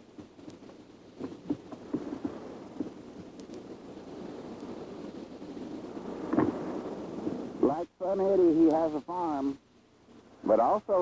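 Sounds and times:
low rumbling: 1.2 - 8.1.

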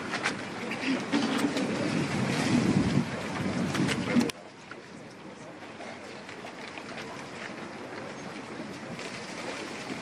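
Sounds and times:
wind buffeting microphone: 1.2 - 4.3.

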